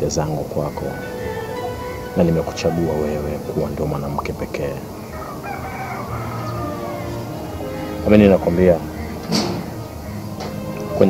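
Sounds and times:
rooster crowing: 0:00.9 - 0:03.9, 0:04.9 - 0:10.3.

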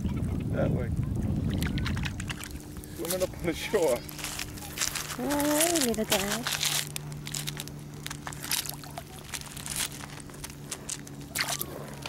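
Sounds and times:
waves lapping on pebbles: 0:01.6 - 0:12.0.

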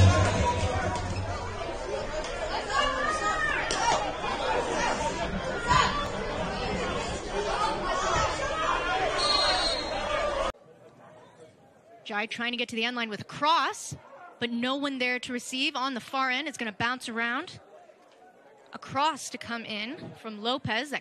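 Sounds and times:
music: 0:00.0 - 0:01.8
spectators talking and calling out: 0:00.0 - 0:11.9.

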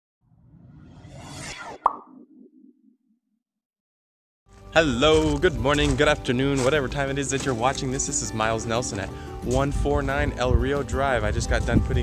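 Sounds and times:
whoosh: 0:00.3 - 0:03.0
sharp pop: 0:01.7 - 0:02.3.

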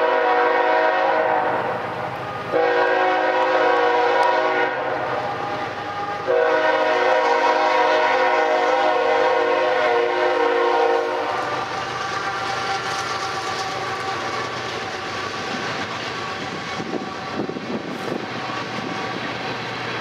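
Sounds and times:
locomotive air horn: 0:00.0 - 0:14.7
locomotive engine noise: 0:00.0 - 0:20.0
train wheels rumbling on rails: 0:00.0 - 0:20.0.

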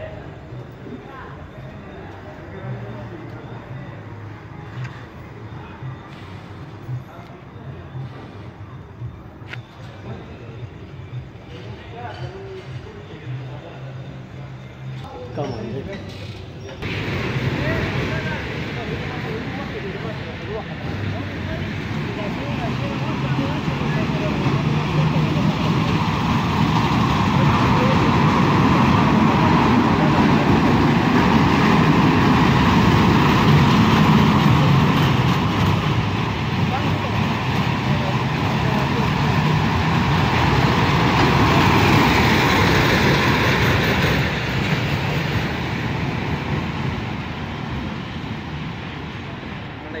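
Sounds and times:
voices: 0:00.0 - 0:50.0
roller coaster wheels rumbling on rail: 0:16.0 - 0:50.0.

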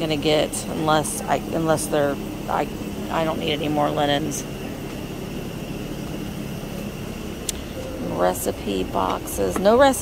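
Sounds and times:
room noise rumble and hiss: 0:00.0 - 0:10.0.

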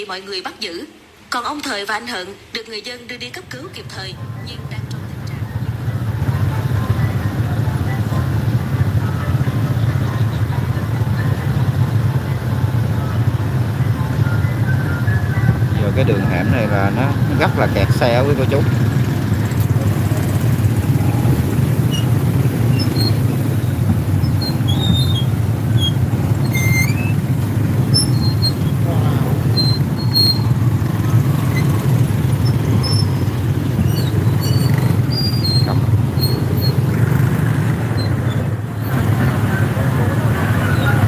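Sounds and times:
motorbike engines idling: 0:03.5 - 0:41.0
short high-pitched squeaks: 0:19.9 - 0:37.0.

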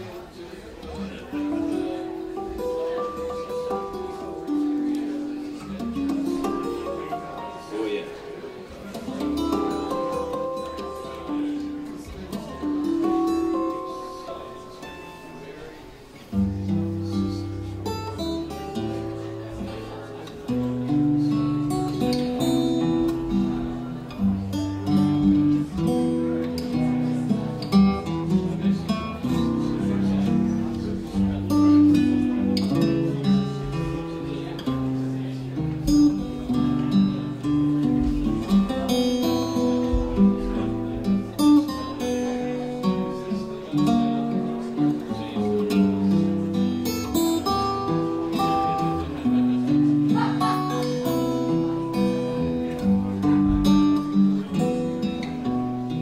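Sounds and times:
solo jazz guitar ballad: 0:00.0 - 0:56.0.

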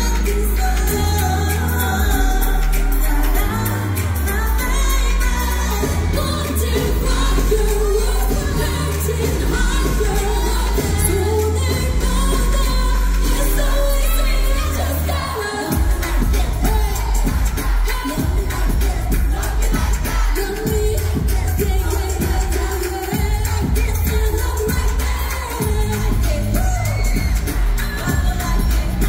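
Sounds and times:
pop backing track with heavy bass: 0:00.0 - 0:29.0
women singing into microphones: 0:00.0 - 0:29.0.

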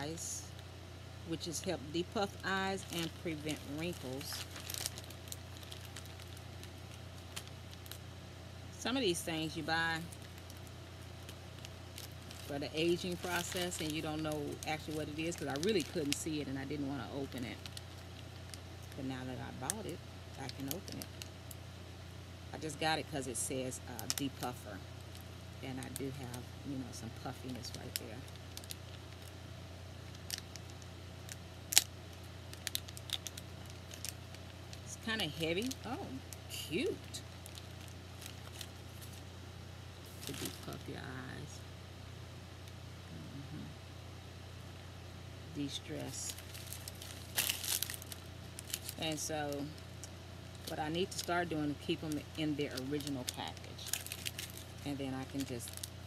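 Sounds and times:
steady low hum: 0:00.0 - 0:56.0
packaging being peeled open: 0:02.6 - 0:08.0, 0:30.1 - 0:34.9, 0:37.3 - 0:39.3, 0:46.3 - 0:49.0, 0:52.8 - 0:56.0.

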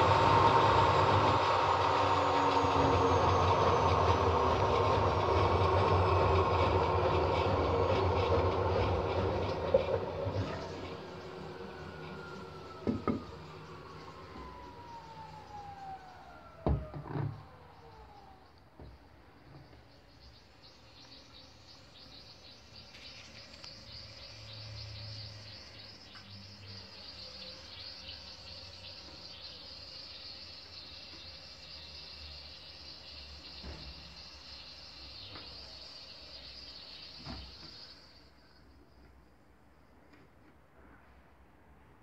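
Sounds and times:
washing machine motor whining down: 0:00.0 - 0:38.2.

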